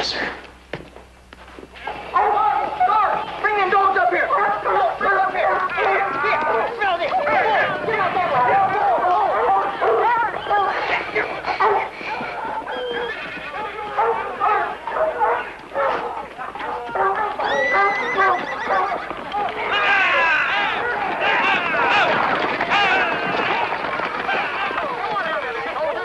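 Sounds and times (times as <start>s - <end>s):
hooves clattering: 0.0s - 26.0s
horses neighing: 1.8s - 26.0s
men shouting: 1.8s - 26.0s.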